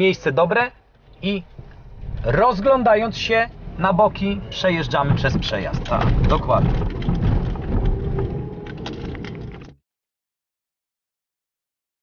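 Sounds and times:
car engine and tyre rumble: 0:00.0 - 0:09.8.

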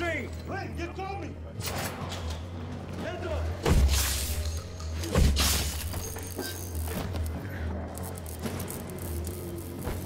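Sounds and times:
low droning film score: 0:00.0 - 0:10.0.

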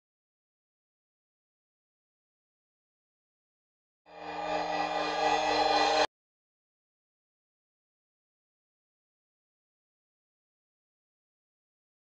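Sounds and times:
layered electronic tone: 0:04.1 - 0:06.1.

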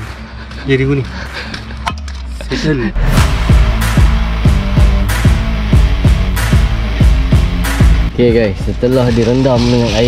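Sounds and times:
quiet background music with bass: 0:00.0 - 0:10.0.

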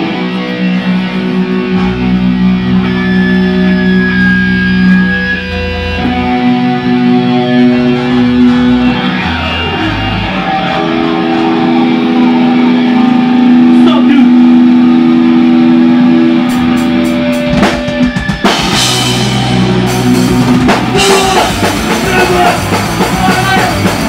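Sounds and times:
electric guitar ringing chord: 0:00.0 - 0:24.0
fast punk band playing: 0:00.0 - 0:24.0
drum hits: 0:17.4 - 0:24.0.

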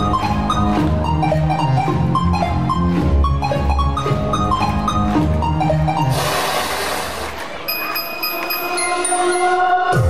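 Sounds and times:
rushing noise burst: 0:06.1 - 0:07.5
held high tones: 0:07.7 - 0:10.0.

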